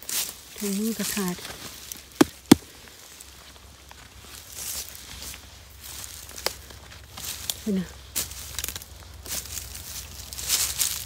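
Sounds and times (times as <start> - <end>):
gloved hand tapping mushroom cap: 2.2 - 2.6.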